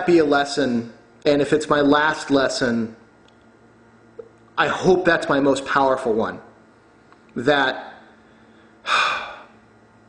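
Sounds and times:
faint steady hum: 0:00.0 - 0:10.0
man breathing loudly: 0:08.2 - 0:09.6.

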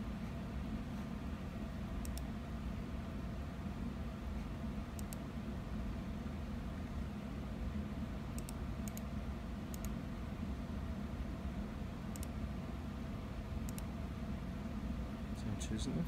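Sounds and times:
steady low hum: 0:00.0 - 0:16.0
computer mouse clicking: 0:02.0 - 0:02.3, 0:04.9 - 0:05.2, 0:08.3 - 0:09.1, 0:09.7 - 0:10.0, 0:12.1 - 0:12.4, 0:13.6 - 0:13.9.

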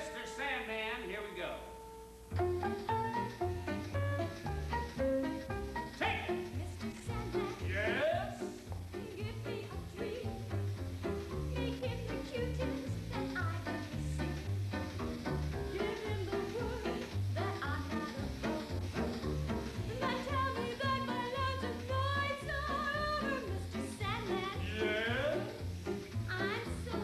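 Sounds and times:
piano music: 0:00.0 - 0:27.0
woman singing operatically: 0:06.4 - 0:08.0, 0:08.9 - 0:10.6, 0:11.3 - 0:14.4, 0:15.7 - 0:18.7, 0:19.8 - 0:25.5, 0:26.3 - 0:27.0.

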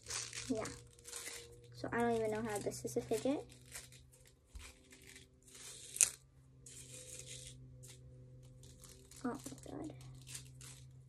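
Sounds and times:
plastic toy crinkly rustles: 0:00.0 - 0:11.0.

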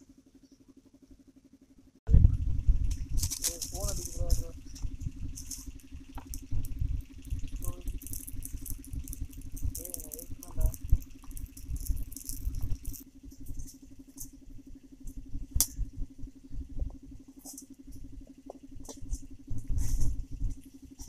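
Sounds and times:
steady low hum: 0:00.0 - 0:21.0
leaves and twigs crackling: 0:02.9 - 0:14.4.

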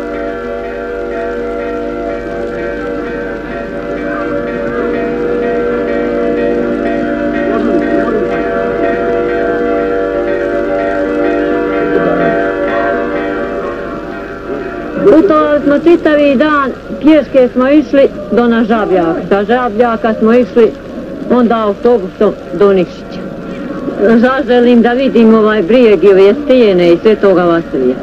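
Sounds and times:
sustained chord: 0:00.0 - 0:28.0.

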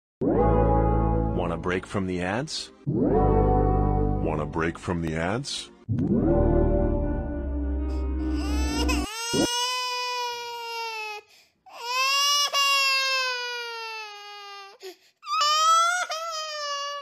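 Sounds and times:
background music: 0:00.2 - 0:09.5.

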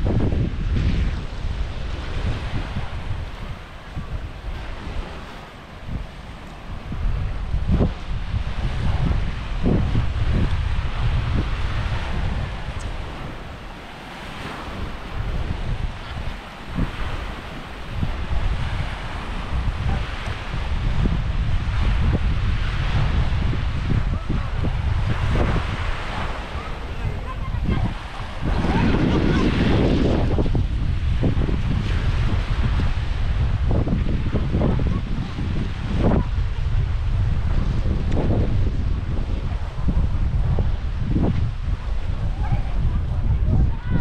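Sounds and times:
small waves washing onto shore: 0:00.0 - 0:44.0
wind buffeting microphone: 0:00.0 - 0:44.0.

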